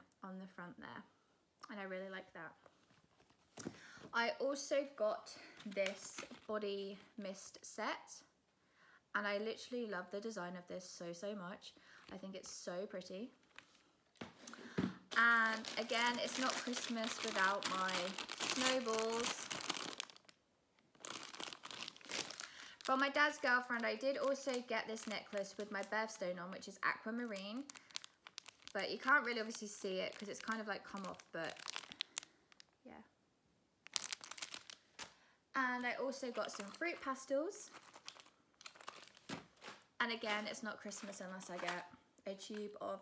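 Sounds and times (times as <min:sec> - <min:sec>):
plastic packet crinkling: 0:13.4 - 0:32.8, 0:33.8 - 0:35.2, 0:35.8 - 0:41.9.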